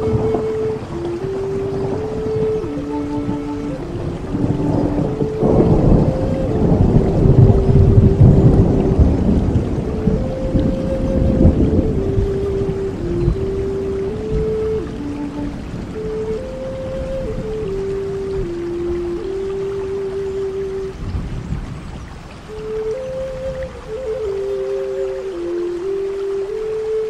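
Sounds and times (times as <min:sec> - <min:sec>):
flute playing slow melody: 0:00.0 - 0:27.0
steady rain: 0:00.0 - 0:27.0.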